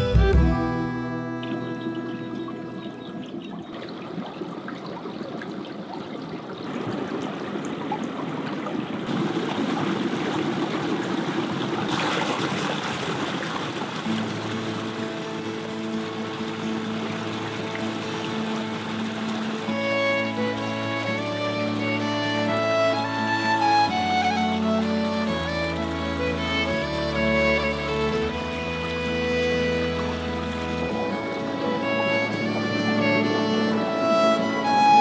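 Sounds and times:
sustained string music: 0.0s - 3.8s, 14.0s - 35.0s
creek trickling over stones: 1.6s - 35.0s.

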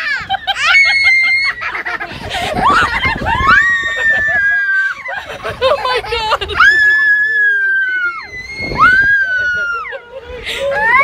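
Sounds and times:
woman and girl screaming: 0.0s - 1.8s, 2.6s - 5.1s, 6.5s - 10.0s, 10.7s - 11.0s.

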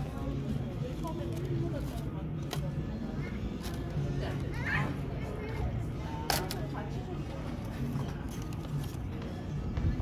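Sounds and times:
faint background voices: 0.0s - 10.0s.

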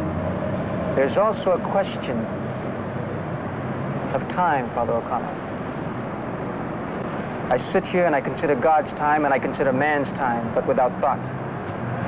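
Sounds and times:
low rumble of city background: 0.0s - 12.0s.

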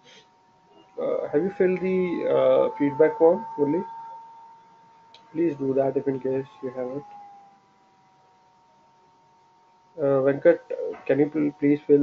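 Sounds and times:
faint thin electronic tones: 0.0s - 7.4s, 8.6s - 12.0s.

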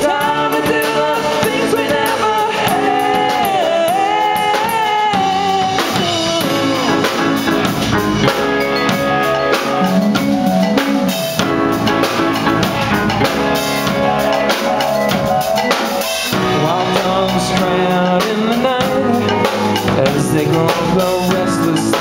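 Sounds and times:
drum kit steady beat: 0.0s - 22.0s
electric guitars: 0.0s - 22.0s.

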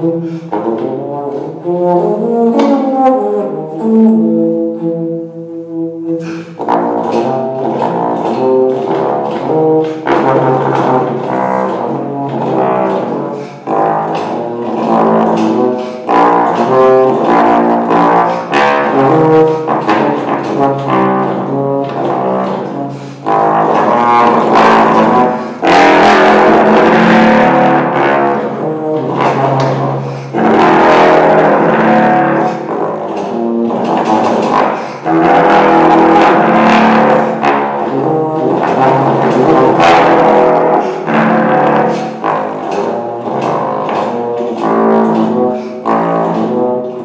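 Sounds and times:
bass trombone solo: 0.0s - 47.0s.

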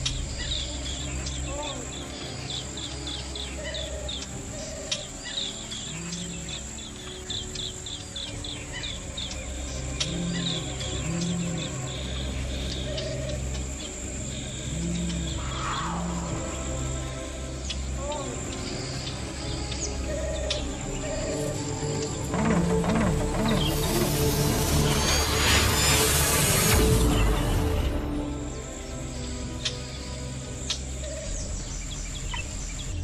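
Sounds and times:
high insect trill: 0.0s - 33.0s
low music drone: 0.0s - 33.0s.

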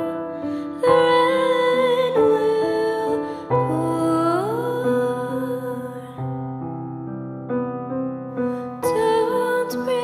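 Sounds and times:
woman singing: 0.0s - 6.4s, 8.6s - 10.0s
piano accompaniment: 0.0s - 10.0s.

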